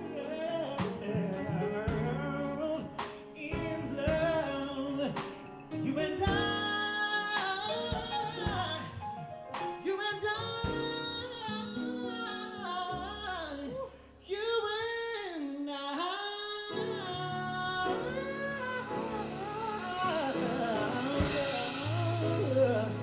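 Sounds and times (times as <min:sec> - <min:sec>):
drums: 0:00.0 - 0:12.1, 0:17.9 - 0:23.0
keyboard: 0:00.0 - 0:23.0
man singing: 0:00.0 - 0:23.0
electric guitar: 0:16.8 - 0:23.0
congas: 0:18.2 - 0:23.0
sharp percussion hits: 0:18.8 - 0:23.0.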